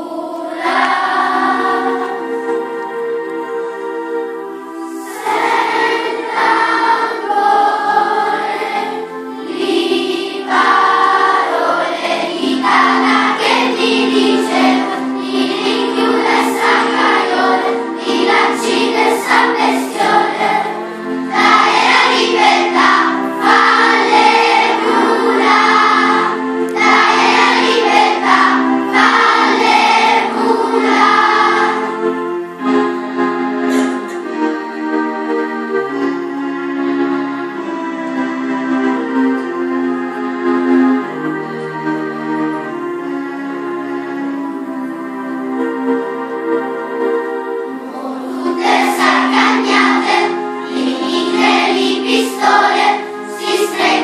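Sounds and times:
children's choir singing: 0.0 - 54.0.

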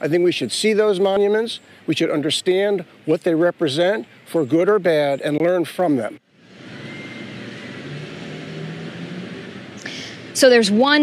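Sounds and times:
outdoor background noise: 0.0 - 11.0
car passing: 5.9 - 11.0.

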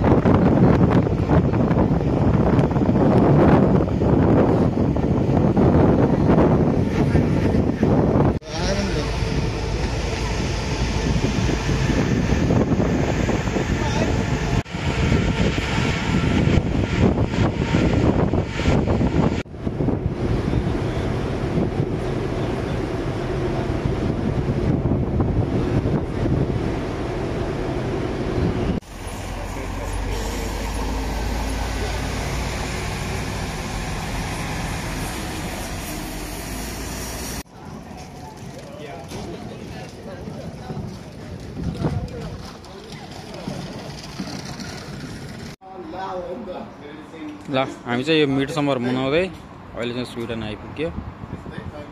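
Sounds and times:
wind buffeting microphone: 0.0 - 29.0, 29.7 - 45.6, 50.3 - 51.9
ship low rumble: 0.0 - 47.8.

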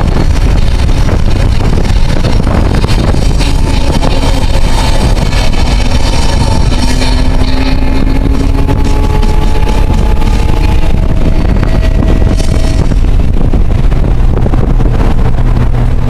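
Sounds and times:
wind and road noise: 0.0 - 16.0.

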